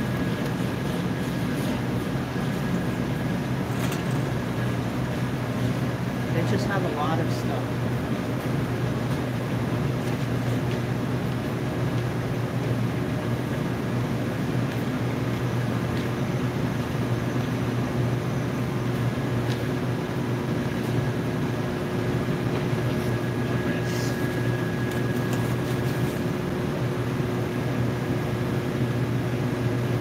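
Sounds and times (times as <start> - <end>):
ventilation and refrigeration hum: 0.0 - 30.0.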